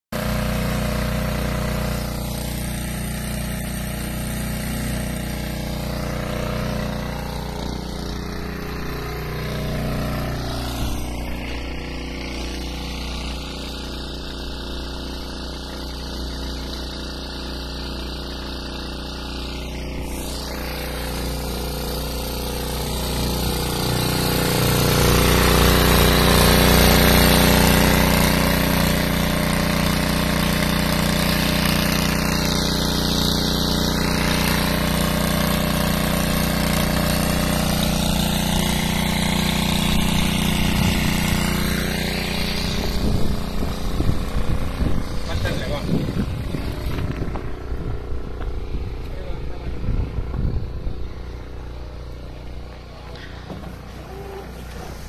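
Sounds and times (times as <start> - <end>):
small petrol engine running: 0.2 - 55.0.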